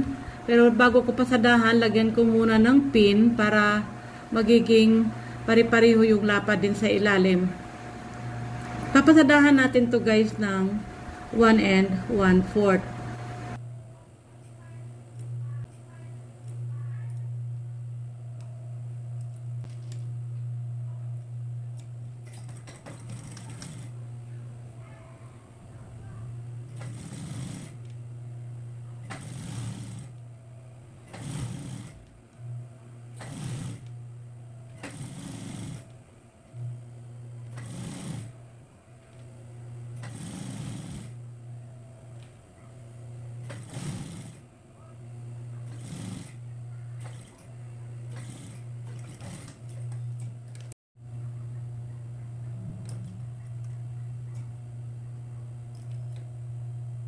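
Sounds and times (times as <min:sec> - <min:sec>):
sewing machine motor hum: 0:00.0 - 0:13.9, 0:21.1 - 0:51.8, 0:52.4 - 0:57.0
sewing machine stitching bursts: 0:22.2 - 0:23.9, 0:26.7 - 0:27.8, 0:29.0 - 0:30.2, 0:31.1 - 0:32.0, 0:33.1 - 0:33.9, 0:34.8 - 0:35.9, 0:37.5 - 0:38.4, 0:40.0 - 0:41.2, 0:43.4 - 0:44.5, 0:45.6 - 0:46.4, 0:47.0 - 0:50.7.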